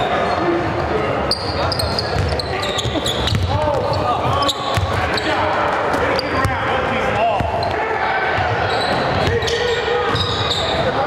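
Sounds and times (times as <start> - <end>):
voices in a gym: 0.0 - 11.0
sneakers squeaking on hardwood floor: 1.3 - 5.4, 8.6 - 11.0
basketball bouncing: 2.1 - 5.2.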